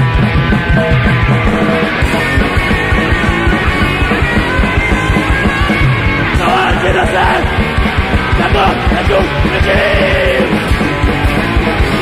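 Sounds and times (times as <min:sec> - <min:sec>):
fast pounding drums: 0:00.0 - 0:12.0
hardcore punk song: 0:00.0 - 0:12.0
shouted vocals: 0:06.3 - 0:07.6, 0:08.3 - 0:10.7.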